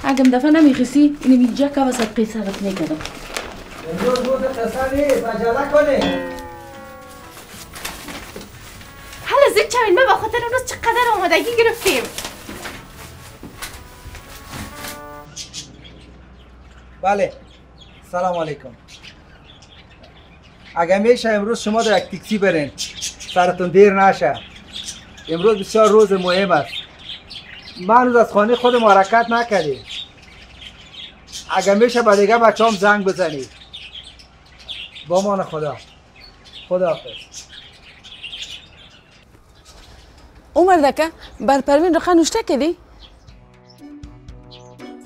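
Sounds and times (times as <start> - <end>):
birds chirping: 0.0 - 45.0.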